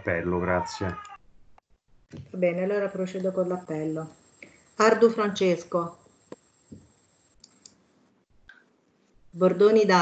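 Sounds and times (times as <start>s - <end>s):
faint clicks: 6.2s - 7.8s.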